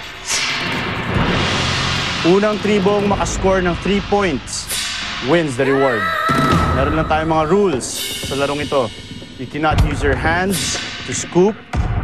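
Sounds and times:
dramatic background music: 0.0 - 12.0
person narrating: 5.3 - 10.7.

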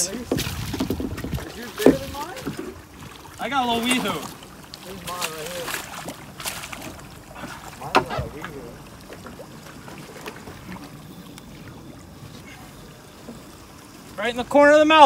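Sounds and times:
water and wind beside hull: 0.0 - 15.0.

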